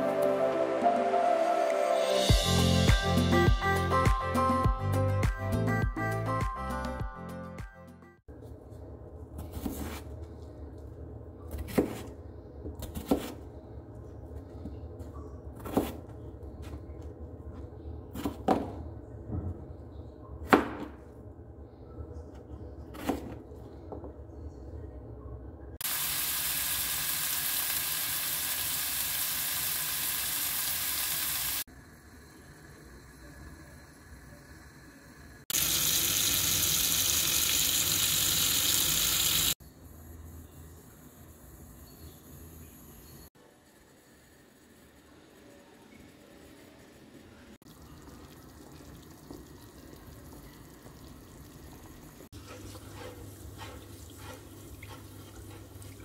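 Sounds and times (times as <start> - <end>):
knife chopping on cutting board: 12.8 - 13.4
oil sizzling in a pan: 25.8 - 33.3, 35.5 - 39.6.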